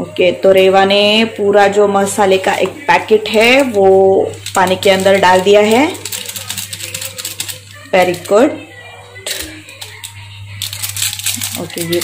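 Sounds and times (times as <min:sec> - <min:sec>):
foil sachet crinkling and rattling: 0:03.3 - 0:08.4, 0:09.2 - 0:12.0.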